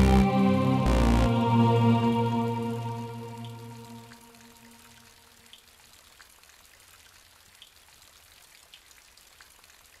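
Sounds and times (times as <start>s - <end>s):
low hum: 0.0s - 4.9s.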